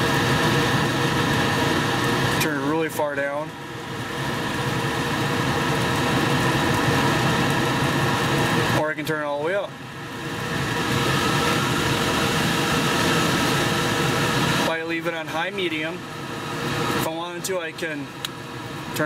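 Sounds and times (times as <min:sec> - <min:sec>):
blower fan humming: 0:00.0 - 0:19.0.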